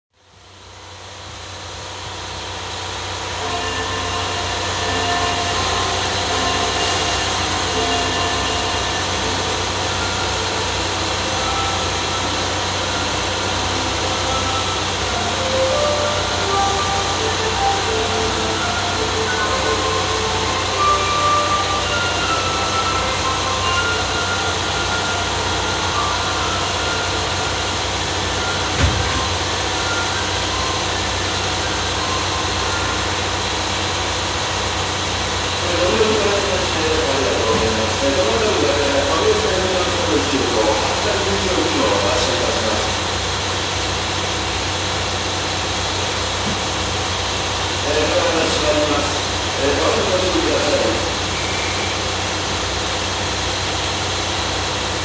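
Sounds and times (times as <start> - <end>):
train humming: 0.2 - 55.0
short thump: 28.8 - 29.2.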